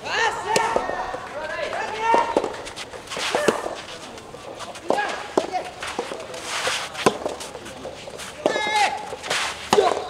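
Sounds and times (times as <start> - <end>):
racket hitting ball: 0.3 - 10.0.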